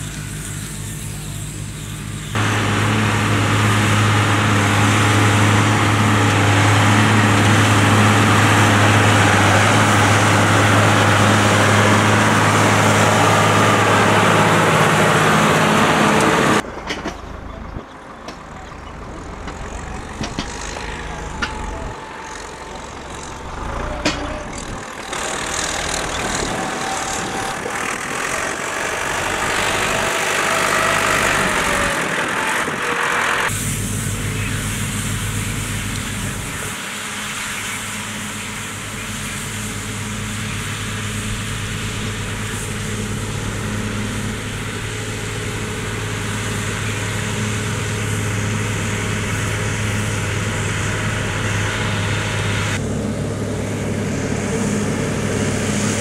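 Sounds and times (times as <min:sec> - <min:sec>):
quieter tractor engine: 0:00.0 - 0:56.0
tractor engine under load: 0:00.0 - 0:56.0.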